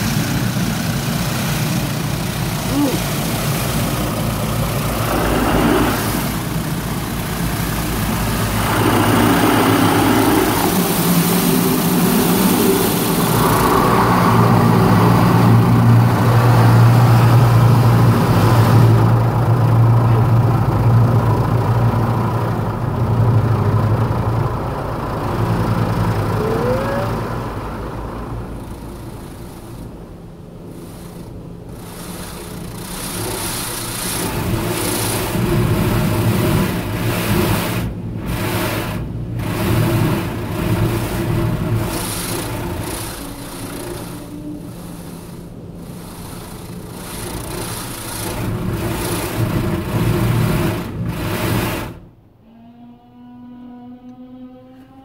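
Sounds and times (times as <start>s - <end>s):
water jets spraying a car: 0.0s - 30.0s, 30.6s - 52.1s
steady low hum: 0.0s - 55.0s.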